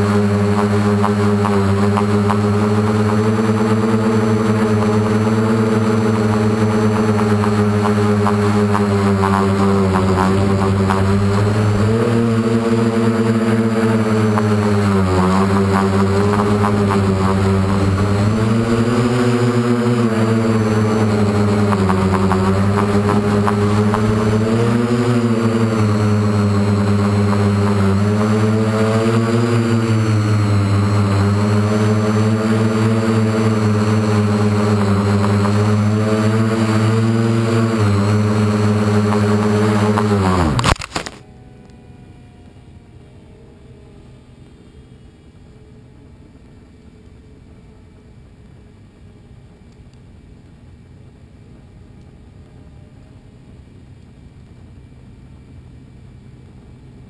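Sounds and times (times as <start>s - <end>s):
model aircraft motor drone: 0.0s - 57.0s.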